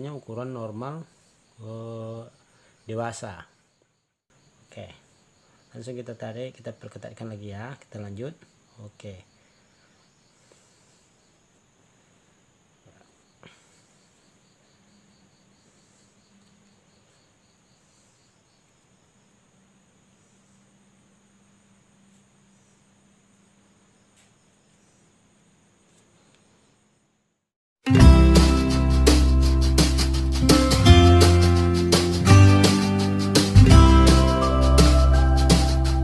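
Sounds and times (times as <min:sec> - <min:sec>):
high-pitched insect chirping: 0:00.0 - 0:25.2, 0:28.3 - 0:36.0
faint click: 0:25.9 - 0:26.5.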